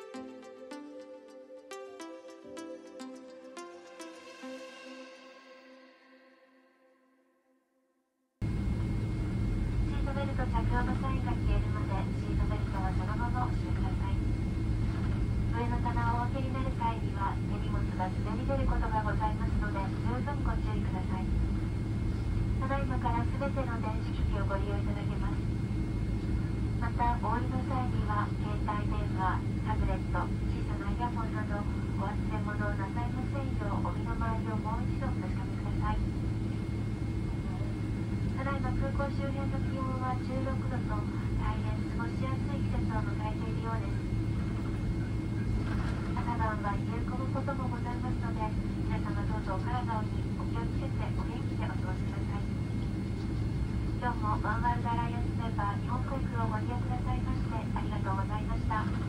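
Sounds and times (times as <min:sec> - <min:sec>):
faint high whine: 0:08.4 - 0:50.9
aircraft cabin rumble on runway: 0:08.4 - 0:59.0.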